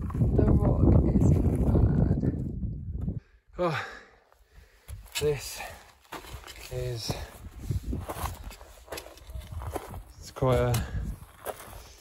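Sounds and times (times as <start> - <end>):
footsteps on gravel: 4.9 - 12.0.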